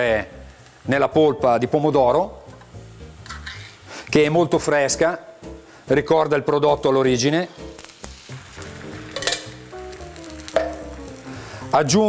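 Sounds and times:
tomato pulp sizzling in frying pan: 0.0s - 12.0s
utensil knocking on pan: 10.4s - 11.0s.

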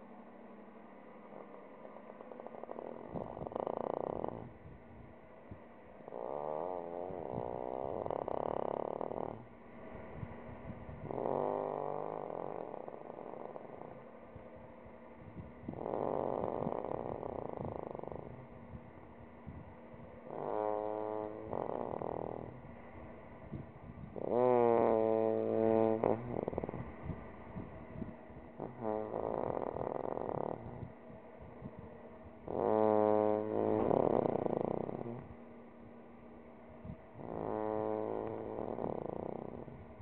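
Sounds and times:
man snoring with groans: 1.2s - 4.6s, 6.0s - 9.5s, 11.0s - 14.1s, 15.6s - 18.6s, 20.2s - 22.7s, 24.1s - 27.7s, 28.5s - 31.7s, 32.4s - 35.4s, 36.8s - 40.0s.

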